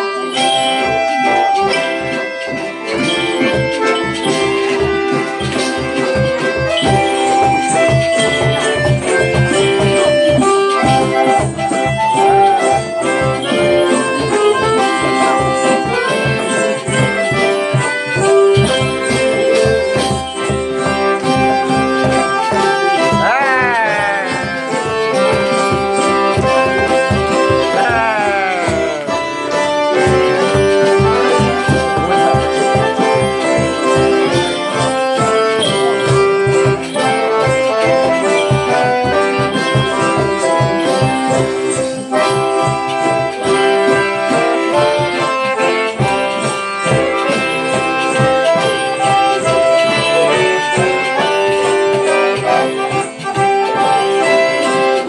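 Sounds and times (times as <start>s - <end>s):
accordion chords: 0.0s - 55.0s
acoustic folk band playing: 0.0s - 55.0s
banjo: 0.0s - 55.0s
frame drums beating: 1.2s - 55.0s.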